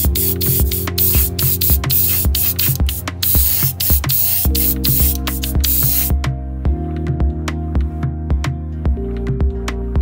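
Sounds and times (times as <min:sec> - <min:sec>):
airbrush spraying hiss: 0:00.0 - 0:06.2
background music with regular beat: 0:00.0 - 0:10.0.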